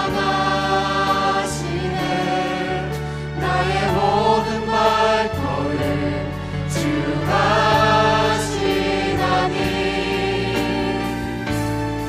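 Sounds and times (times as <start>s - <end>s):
backing voices singing: 0.0s - 11.4s.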